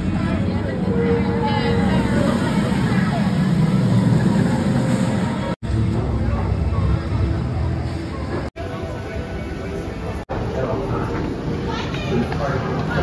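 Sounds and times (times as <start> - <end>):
people talking: 0.0 - 13.0
roller coaster rumbling on track: 0.0 - 13.0.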